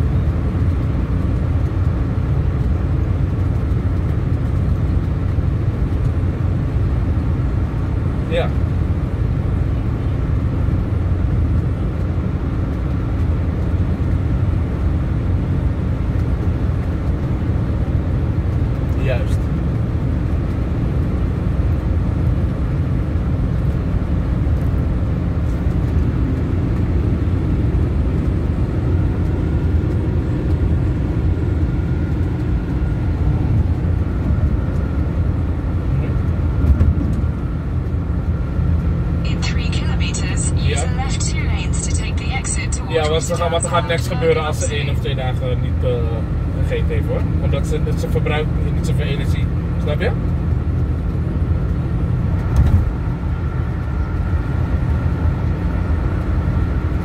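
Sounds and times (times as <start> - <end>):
car cabin road noise: 0.0 - 57.0.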